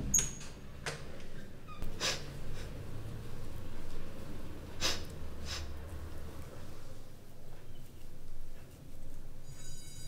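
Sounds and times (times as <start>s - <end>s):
door squeaking: 0.0s - 0.6s, 1.7s - 1.9s.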